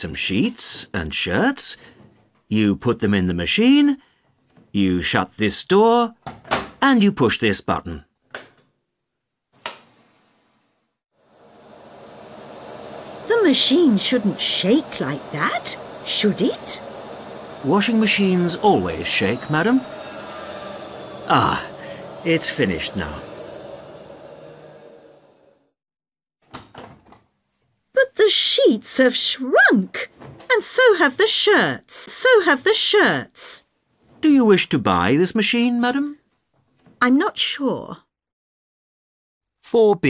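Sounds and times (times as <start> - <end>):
washing machine hum: 11.2 - 25.8.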